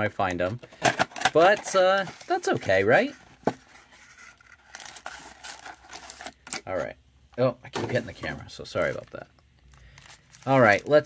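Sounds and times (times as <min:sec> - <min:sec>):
foil pack crinkling: 0:04.0 - 0:06.6, 0:08.8 - 0:11.0.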